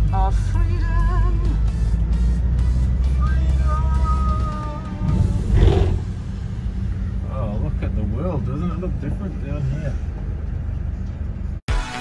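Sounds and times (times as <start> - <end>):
van engine and road rumble: 0.0 - 11.7.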